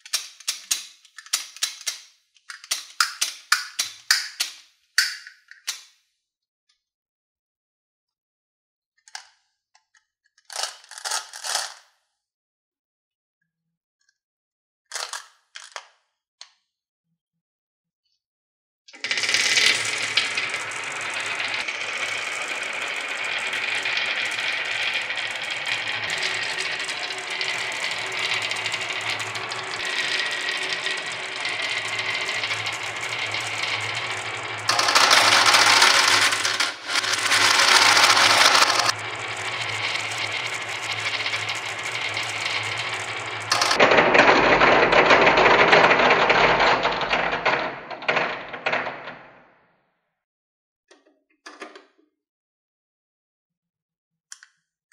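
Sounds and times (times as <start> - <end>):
marbles rolling on wooden track: 0.1 - 5.1, 19.0 - 49.5.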